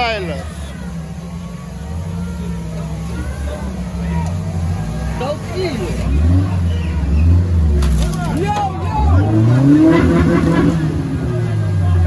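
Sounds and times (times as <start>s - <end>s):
off-road vehicle engine revving: 0.0s - 12.0s
voices shouting: 0.0s - 12.0s.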